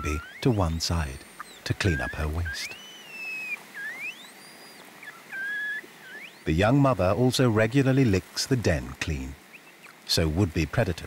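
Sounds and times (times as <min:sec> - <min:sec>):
red panda cub squealing: 0:00.0 - 0:06.5.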